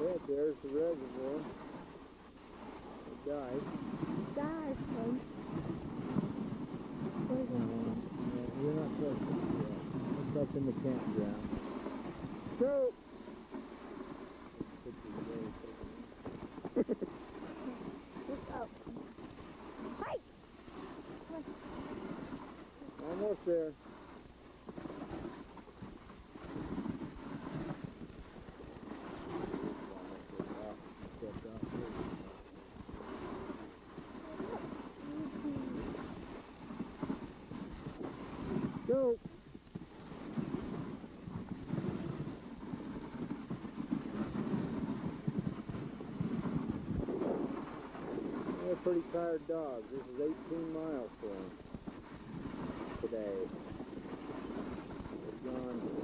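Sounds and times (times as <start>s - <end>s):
sled runners scraping over snow: 0.0s - 56.0s
wind on microphone: 0.0s - 56.0s.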